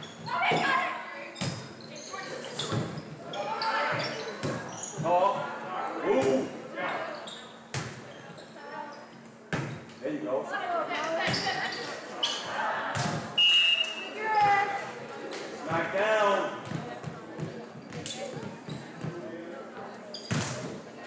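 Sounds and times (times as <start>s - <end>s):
players and spectators voices: 0.0s - 21.0s.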